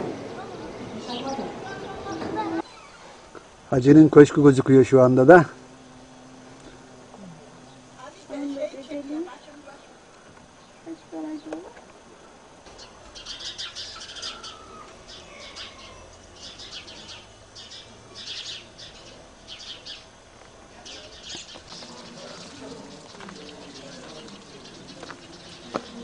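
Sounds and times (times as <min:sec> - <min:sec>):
small birds chirping: 0:00.2 - 0:26.0
falling whistled bird calls: 0:12.7 - 0:20.0.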